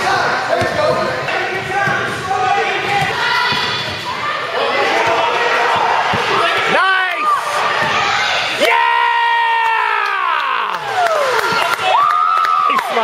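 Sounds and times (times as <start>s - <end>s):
crowd voices chattering: 0.0s - 13.0s.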